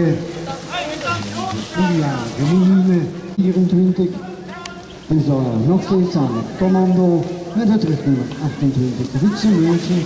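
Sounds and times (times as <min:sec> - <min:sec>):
man talking: 0:00.0 - 0:10.0
outdoor background noise: 0:00.0 - 0:10.0.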